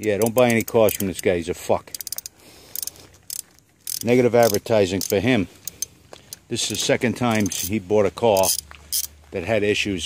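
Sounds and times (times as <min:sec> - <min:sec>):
small parts clicking and rattling: 0:00.0 - 0:09.2.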